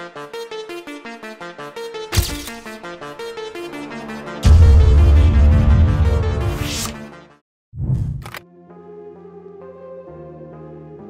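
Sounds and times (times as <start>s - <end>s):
soft synth chords music: 2.8s - 7.3s
swooshing sound effect: 4.0s - 7.1s.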